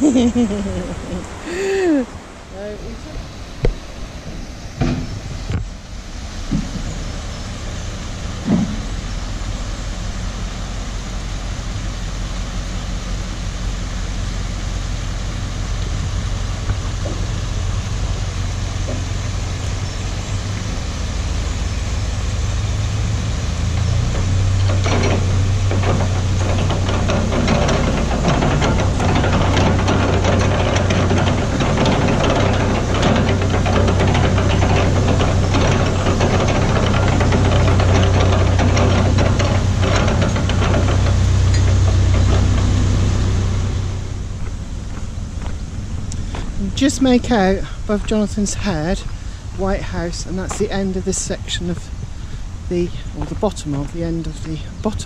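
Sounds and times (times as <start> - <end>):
boat diesel engine throbbing: 0.0 - 55.0.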